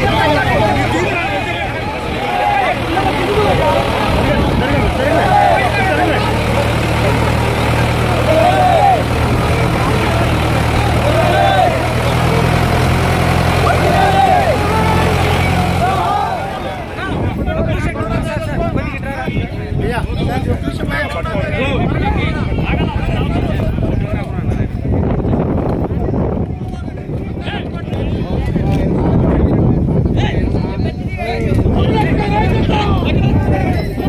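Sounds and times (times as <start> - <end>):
tractor diesel engine idling: 0.0 - 18.6
crowd voices and shouts: 0.0 - 34.0.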